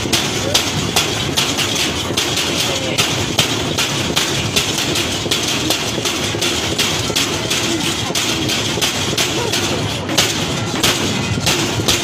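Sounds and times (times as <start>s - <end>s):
wooden paddle knocking and scraping wok: 0.0s - 12.0s.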